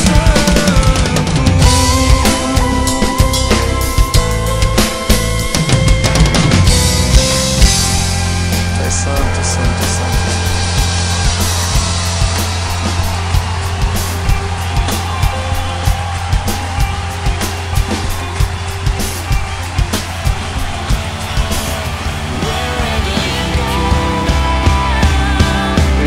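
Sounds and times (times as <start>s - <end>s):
drum kit playing a beat: 0.0s - 26.0s
rock band music: 0.0s - 26.0s.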